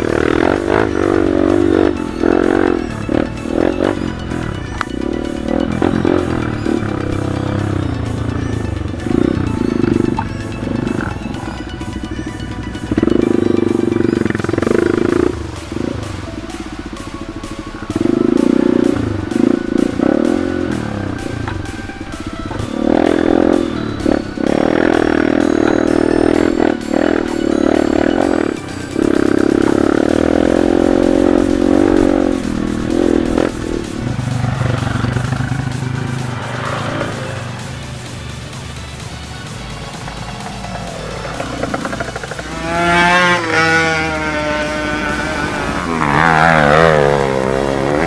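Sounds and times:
background music with steady beat: 0.0 - 48.0
motorcycle engine revving: 0.0 - 48.0.

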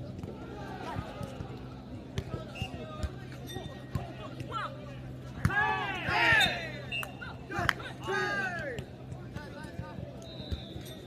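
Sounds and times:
players shouting: 4.0 - 8.9.

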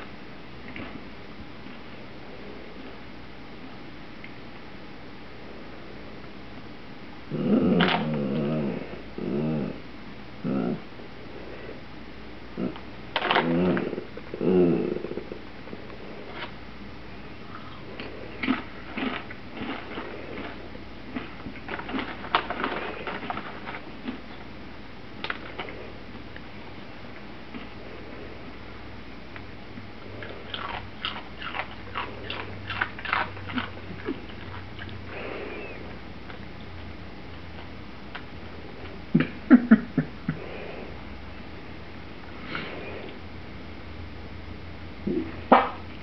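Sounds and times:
dog growling: 7.3 - 9.8, 10.4 - 11.8, 12.5 - 16.5, 30.0 - 36.0
dog crunching chips: 17.8 - 24.5, 30.0 - 36.5.

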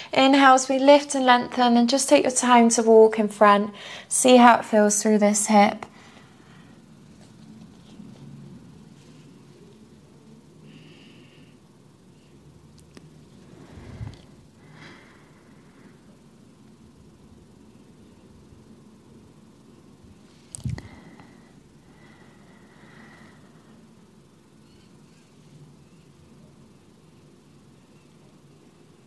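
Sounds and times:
soft breathing: 10.6 - 12.4, 13.4 - 16.2, 20.2 - 24.0.

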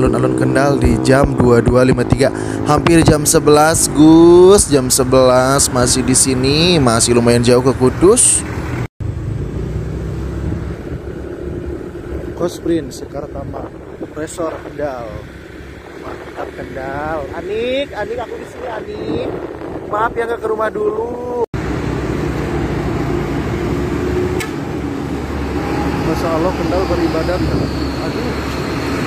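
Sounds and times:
motorcycle engine rumble: 0.0 - 29.0
passing vehicles: 0.0 - 29.0
brief click: 24.4 - 24.6.

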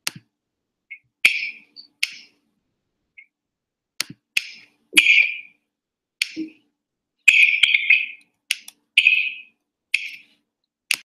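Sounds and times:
sharp clicks: 4.0 - 4.7, 8.2 - 8.8.

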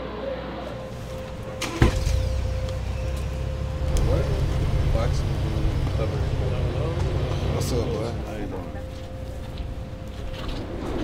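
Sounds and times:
indistinct voices: 0.0 - 11.0
engine idling low rumble: 0.7 - 11.0.

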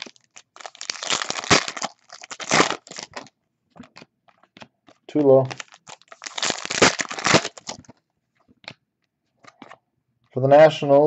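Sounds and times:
foil wrapper tearing and crinkling: 0.0 - 3.3, 5.4 - 7.8.

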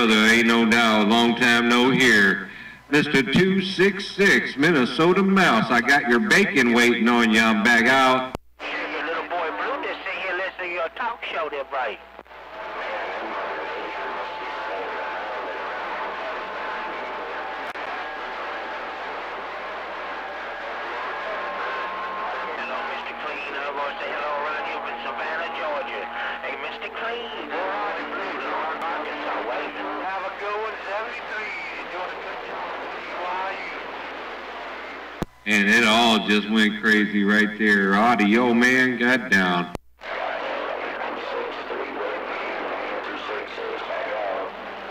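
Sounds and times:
radio static: 0.0 - 44.9.

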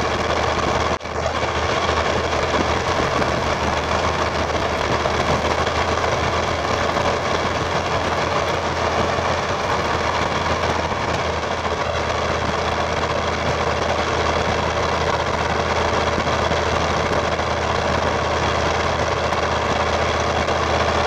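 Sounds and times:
diesel engine low rumble: 0.0 - 21.0
wind noise: 0.0 - 21.0
tyre noise: 2.2 - 12.7.

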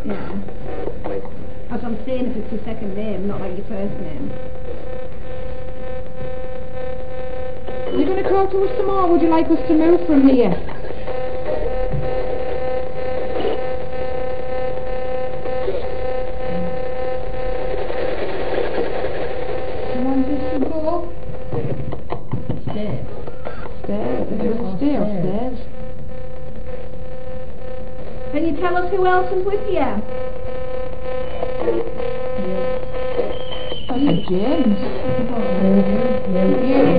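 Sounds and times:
electronic hum: 0.0 - 36.9
faint electronic blips: 0.0 - 36.9
radio hiss: 0.0 - 36.9.

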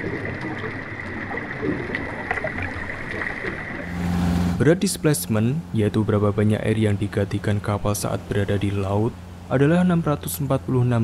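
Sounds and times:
water rushing underwater: 0.0 - 4.6.

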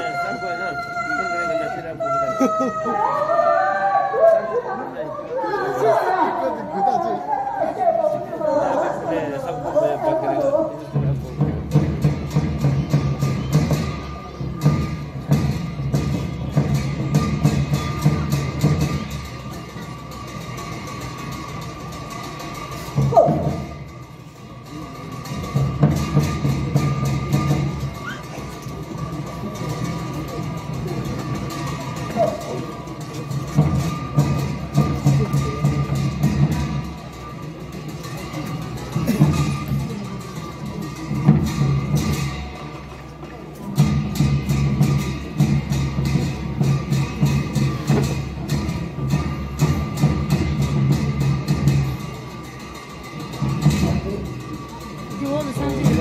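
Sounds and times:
drum beating a steady rhythm: 8.1 - 56.0
cymbals: 10.7 - 56.0.

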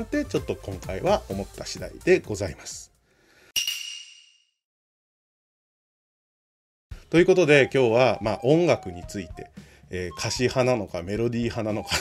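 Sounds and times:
metallic ping ringing: 3.6 - 4.5.

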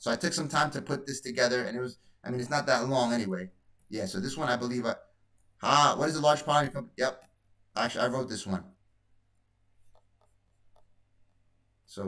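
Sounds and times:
computer mouse clicks: 9.3 - 11.4.

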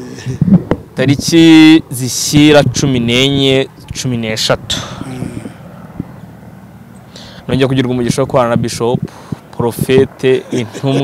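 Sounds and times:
low outdoor background noise: 0.0 - 11.0
man speaking: 1.0 - 5.4, 9.6 - 11.0.

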